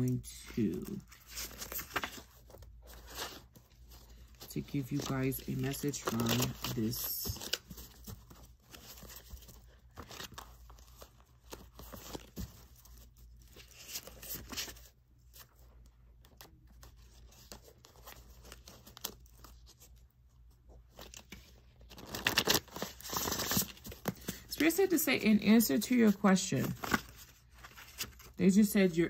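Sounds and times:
cards being shuffled: 0.0 - 14.9.

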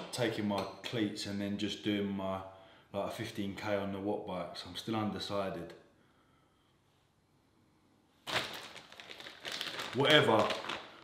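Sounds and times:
packaging crinkling and rustling: 8.2 - 11.0.

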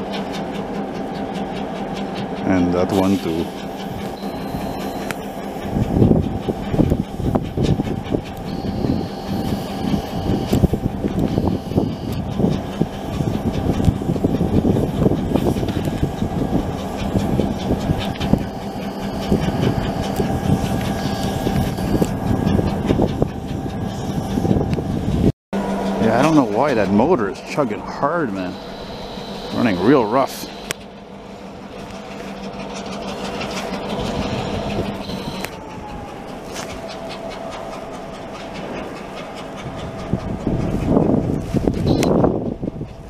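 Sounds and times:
diesel locomotive engines chugging: 0.0 - 43.0.

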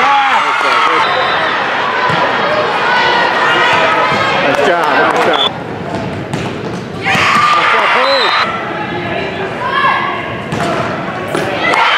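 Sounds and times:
volleyball being hit and bouncing: 5.1 - 7.8
shouts echoing in gym: 7.0 - 11.9.

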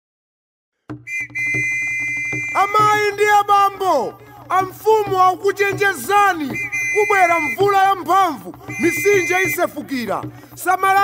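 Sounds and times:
high-pitched whistle tone: 1.1 - 3.0, 6.5 - 7.9, 8.7 - 9.6.

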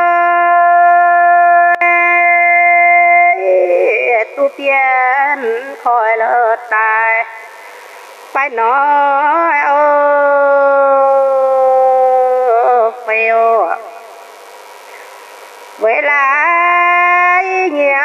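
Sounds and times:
woman singing unaccompanied: 0.0 - 7.5, 8.3 - 14.0, 15.8 - 18.0.

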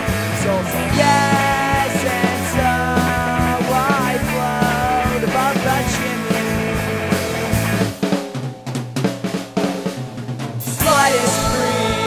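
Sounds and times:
band holding notes: 0.0 - 8.1, 10.8 - 12.0
snare and bass drum fill: 5.3 - 12.0.

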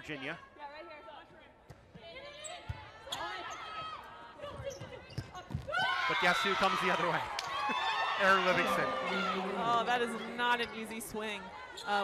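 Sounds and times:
players' voices calling: 8.1 - 12.0.

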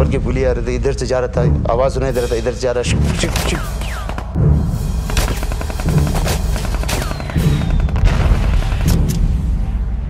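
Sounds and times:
dramatic music: 0.0 - 10.0
rifle shots: 5.0 - 9.3.

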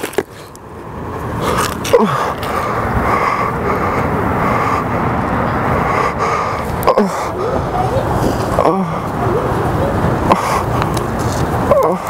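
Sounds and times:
vehicle rumble and hiss: 0.0 - 12.0.

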